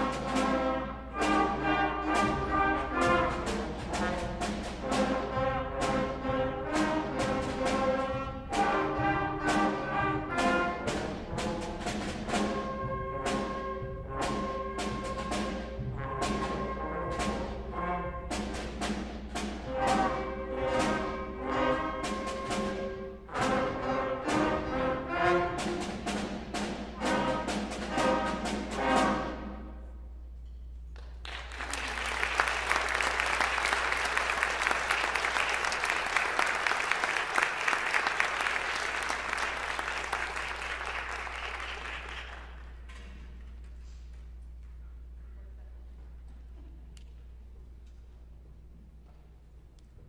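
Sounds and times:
drum strikes: 0.0 - 29.7
instrumental ensemble playing: 0.0 - 30.0, 31.6 - 43.0.

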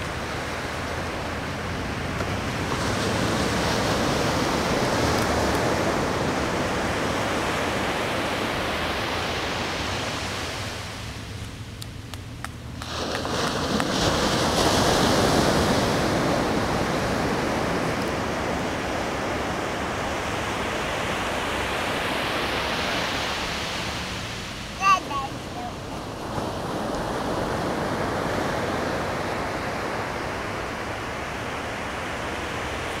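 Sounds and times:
ocean surf washing onto beach: 0.0 - 33.0.

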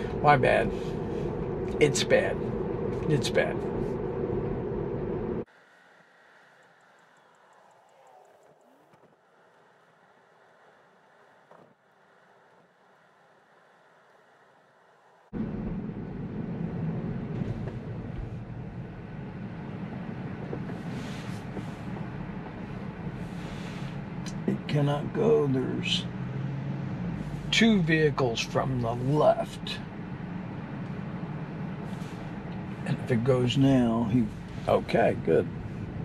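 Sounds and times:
road and tyre rumble: 0.0 - 36.0.

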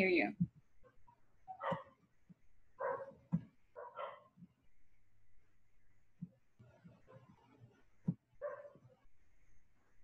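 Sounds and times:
dog barking faintly: 1.1 - 2.0, 2.8 - 4.4, 8.4 - 9.0.

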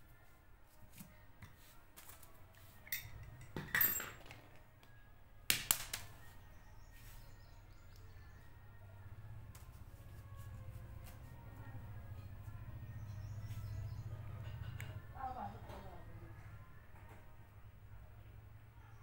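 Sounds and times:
metallic clicks and clinks: 2.8 - 4.6
faint low hum: 6.0 - 19.0.

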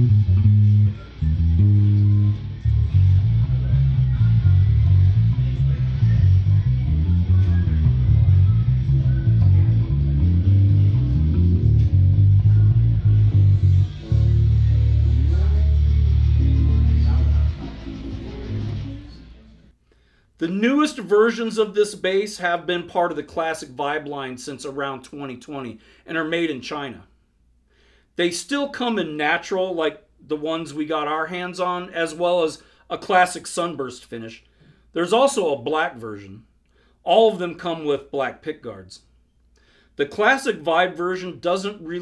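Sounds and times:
plucked bass guitar notes: 0.0 - 19.3.

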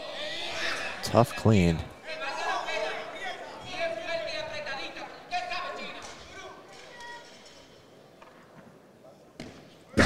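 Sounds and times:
voices shouting in a hall: 0.0 - 7.4.

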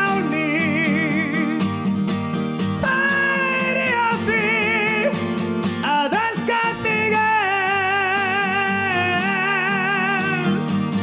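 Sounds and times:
man singing with vibrato: 0.0 - 2.0, 2.6 - 11.0
strummed acoustic guitar: 0.0 - 11.0.

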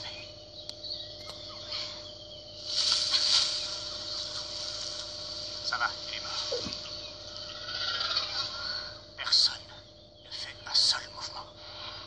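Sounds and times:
birds: 0.0 - 12.0
faint hum and hiss: 0.0 - 12.0
insects: 0.0 - 12.0
loud hissing swell: 1.6 - 9.6.

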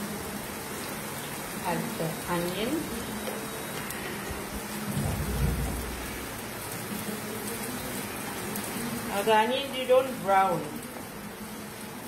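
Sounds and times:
onions sizzling in hot oil: 0.0 - 4.9, 5.6 - 12.0.

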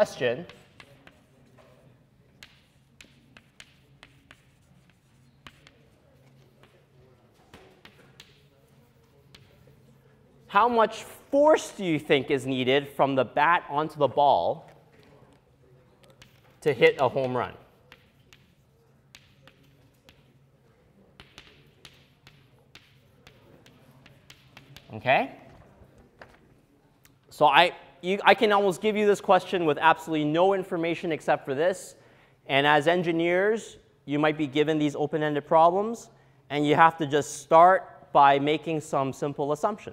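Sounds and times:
chalk tapping and scraping on board: 0.1 - 10.3, 14.7 - 25.5.

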